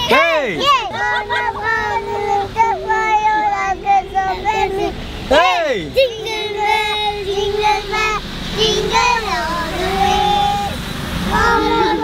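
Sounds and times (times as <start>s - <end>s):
children singing: 0.0s - 5.0s, 6.0s - 12.0s.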